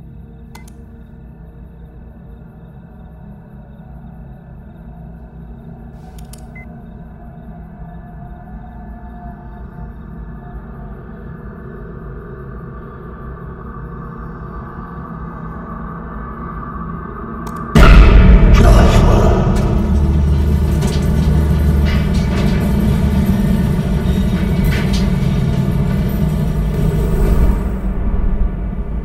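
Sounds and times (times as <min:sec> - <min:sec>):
low suspense music drone: 0:00.0 - 0:29.0
computer mouse clicks: 0:00.5 - 0:00.8, 0:06.1 - 0:06.6, 0:17.4 - 0:17.7.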